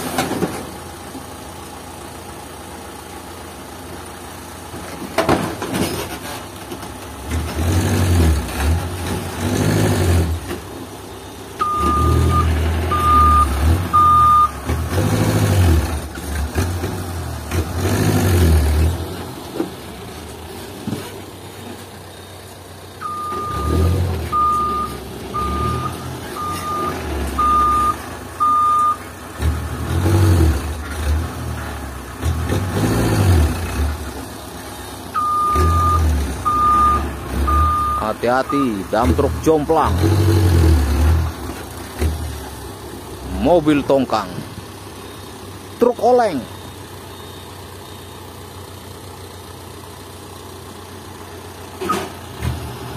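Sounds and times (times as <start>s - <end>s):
truck engine revving: 5.8s - 47.0s, 51.2s - 52.9s
reversing beeper beeps: 11.6s - 14.6s, 23.0s - 29.0s, 35.2s - 38.8s.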